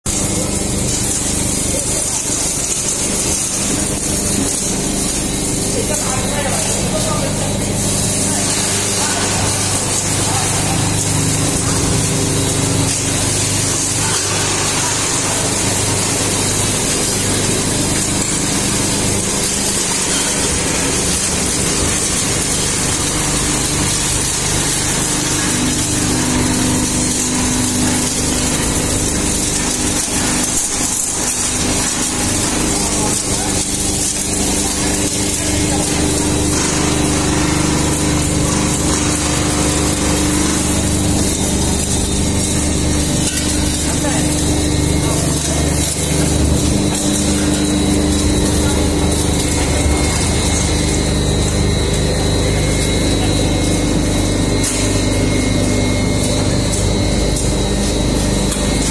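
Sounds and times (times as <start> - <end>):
large machine engine running: 0.1 - 58.9.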